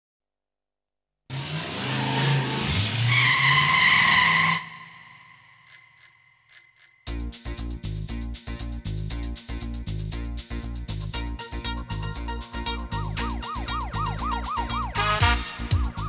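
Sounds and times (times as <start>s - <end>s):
vehicle-like rush with squeal: 1.3s - 5.6s
bicycle bell ringing: 5.6s - 7.4s
rhythmic music beat: 7.1s - 16.0s.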